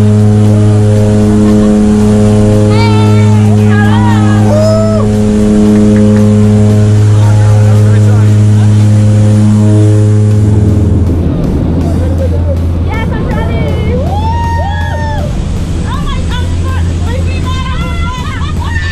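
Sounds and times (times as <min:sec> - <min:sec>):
plane engines droning in cabin: 0:00.0 - 0:18.9
people shouting: 0:02.6 - 0:06.2, 0:12.9 - 0:18.9.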